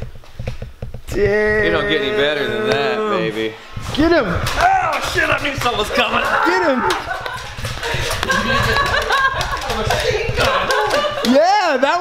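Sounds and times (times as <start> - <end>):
excited voices: 1.1 - 12.0.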